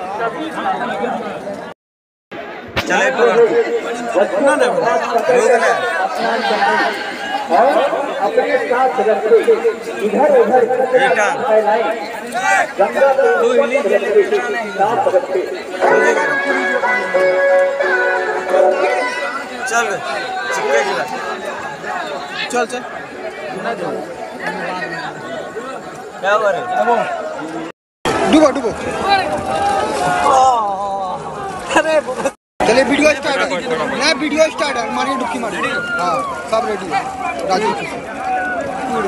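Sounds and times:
men talking over one another: 0:00.0 - 0:01.8, 0:02.4 - 0:39.0
crowd chatter: 0:00.0 - 0:39.0.

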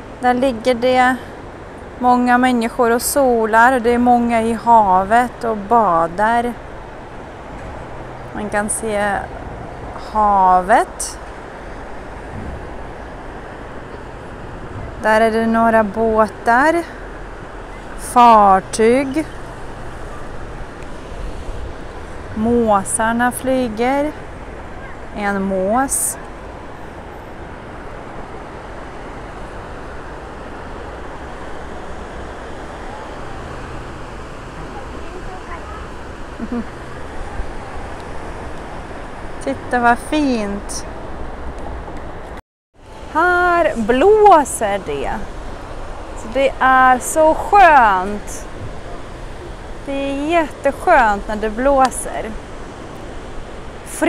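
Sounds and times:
distant road traffic: 0:00.0 - 0:54.0
wind on microphone: 0:04.0 - 0:54.0.

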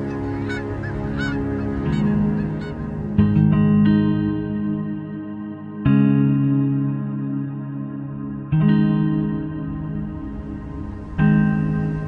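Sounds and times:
geese honking: 0:00.0 - 0:03.3
background music: 0:00.0 - 0:12.0.

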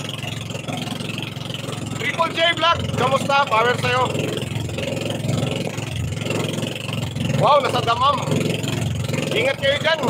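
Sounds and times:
boat engine running: 0:00.0 - 0:10.0
water rushing: 0:00.0 - 0:10.0
wind: 0:00.0 - 0:10.0.

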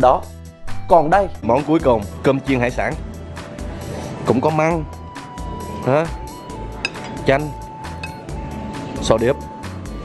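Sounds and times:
background music: 0:00.0 - 0:10.0
metal spoon clinking on plate: 0:06.8 - 0:07.3, 0:07.9 - 0:08.3.

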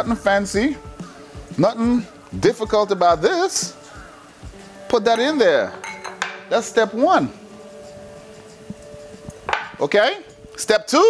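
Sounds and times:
glass tumblers knocking on wood: 0:05.7 - 0:06.5.

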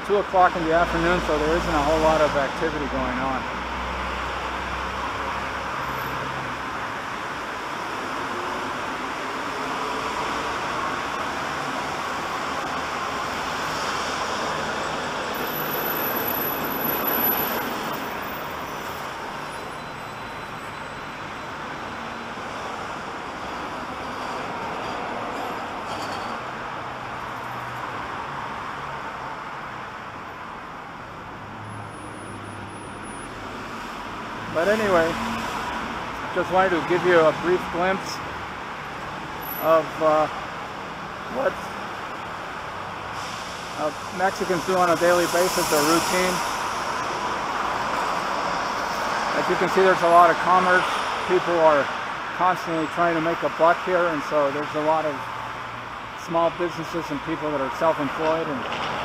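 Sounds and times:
road traffic hum: 0:00.0 - 0:59.0.

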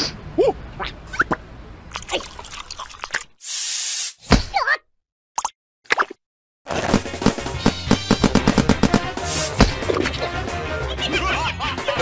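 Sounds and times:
gliding cartoon voice sounds: 0:00.4 - 0:01.4
cartoon hiss: 0:03.4 - 0:04.2, 0:09.2 - 0:09.6.

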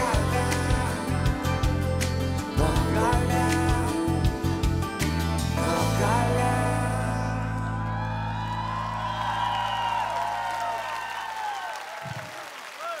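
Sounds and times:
audience cheering and whooping: 0:07.7 - 0:13.0.

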